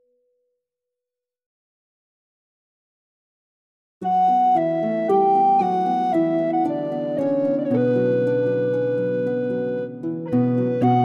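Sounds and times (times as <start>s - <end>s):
soft background music note: 4.0s - 11.0s.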